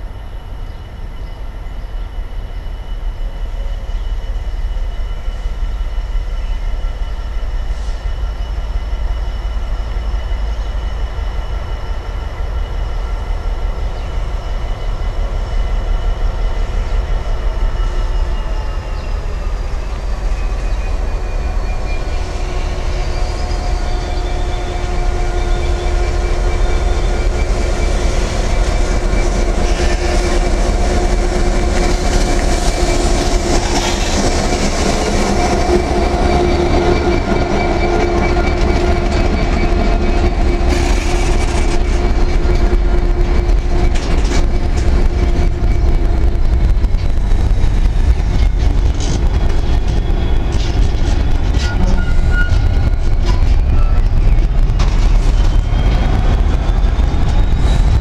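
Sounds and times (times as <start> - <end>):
diesel locomotive engine humming: 0.0 - 58.0
train wheels clicking over rail joints: 10.3 - 58.0.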